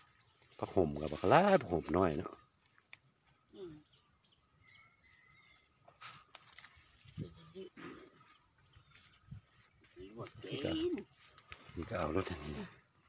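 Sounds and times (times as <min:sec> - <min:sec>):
faint bird calls: 0:03.3 - 0:13.0.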